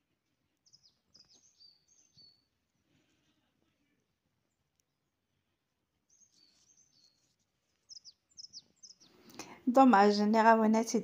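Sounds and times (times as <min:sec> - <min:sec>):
faint high bird chirps: 0:00.0 - 0:10.5.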